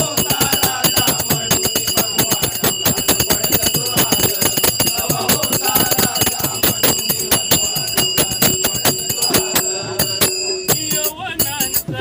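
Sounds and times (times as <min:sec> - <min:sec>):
brass hand cymbals ringing: 0:00.0 - 0:12.0
hand drum strokes: 0:00.0 - 0:12.0.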